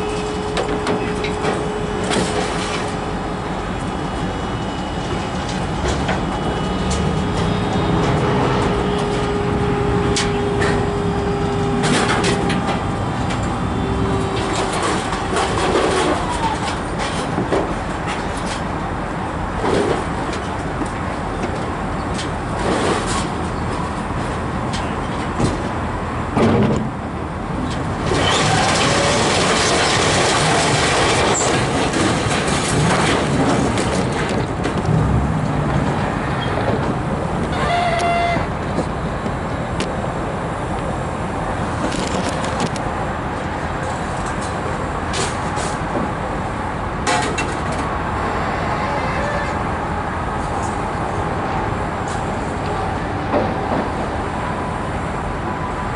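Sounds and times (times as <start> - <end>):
hydraulic whine: 0.0 - 16.9, 34.8 - 39.8
loud continuous noise: 0.0 - 55.9.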